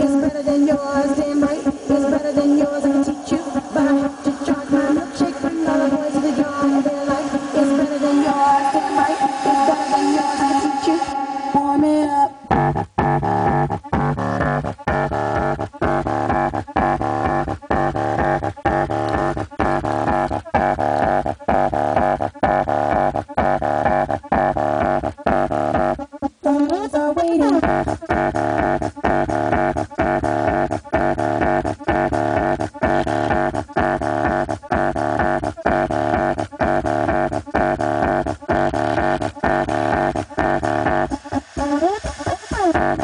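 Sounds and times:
bass-heavy music through subwoofer: 0.0s - 43.0s.

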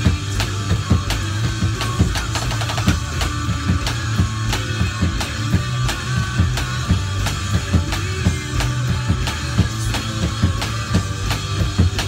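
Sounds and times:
practice drum pad hits: 0.0s - 12.0s
rock song with guitar and drums: 0.0s - 12.0s.

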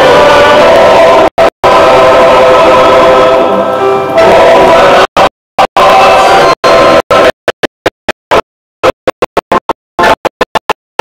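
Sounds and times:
male voice choir singing: 0.0s - 7.4s.

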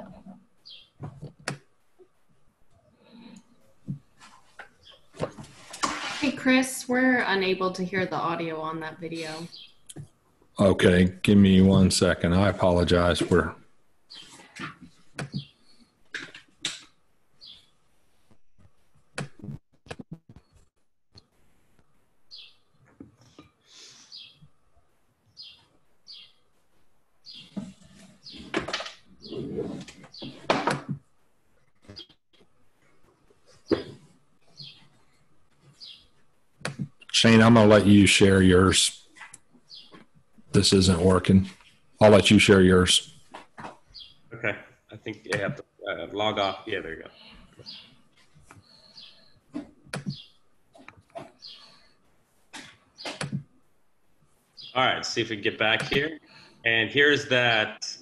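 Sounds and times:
faint room noise: 0.0s - 20.1s, 21.2s - 58.0s.

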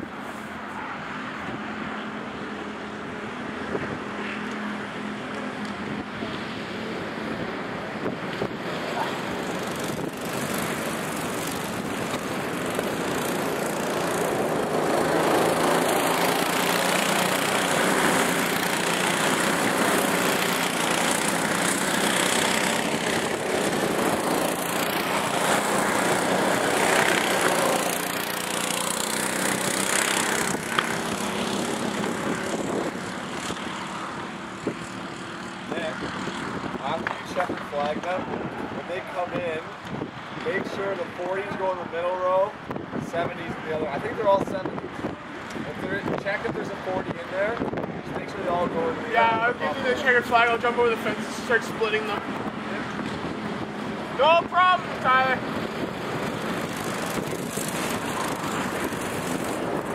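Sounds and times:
go-kart engines running: 0.0s - 59.9s.

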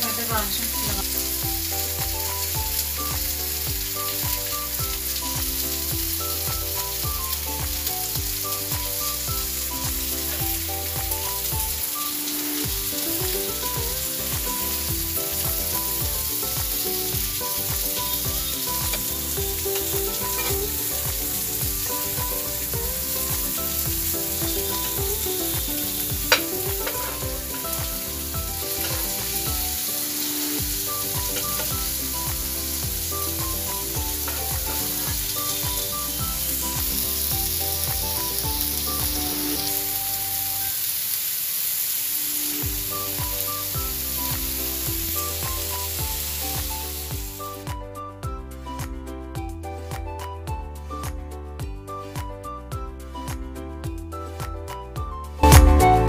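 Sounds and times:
background tune of held notes: 0.0s - 40.7s, 42.4s - 56.0s
food sizzling in hot oil: 0.0s - 47.8s.

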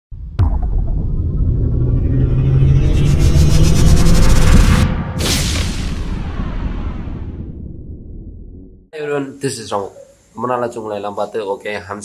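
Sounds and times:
deep rumble with low drone: 0.2s - 8.9s.

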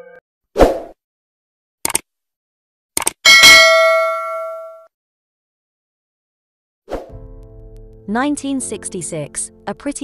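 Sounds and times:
notification bell ding: 3.3s - 4.9s.

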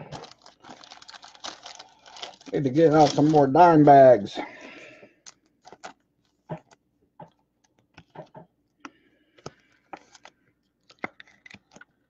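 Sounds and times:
cards and plastic bags handled: 0.0s - 4.2s, 5.2s - 6.8s, 8.8s - 12.0s.

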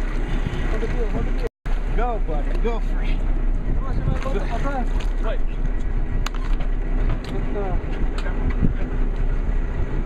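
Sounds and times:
boat engine running: 0.0s - 10.0s
water noise: 0.0s - 10.0s
wind: 0.0s - 10.0s.

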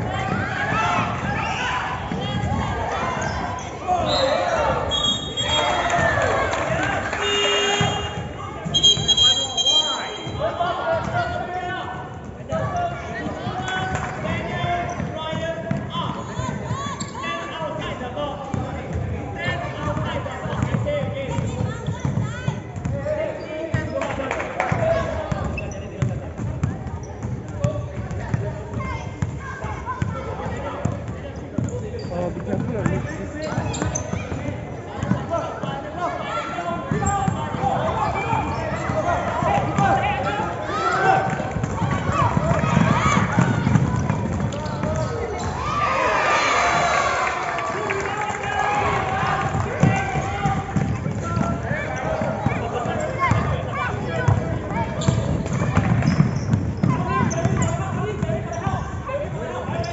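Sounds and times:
basketball bouncing on court: 12.2s - 17.1s, 18.4s - 23.1s, 24.7s - 35.7s, 36.8s - 45.7s, 49.4s - 59.9s.

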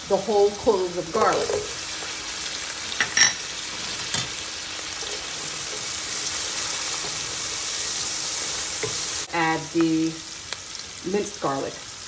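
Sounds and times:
vegetables sizzling in a pan: 0.0s - 12.0s.

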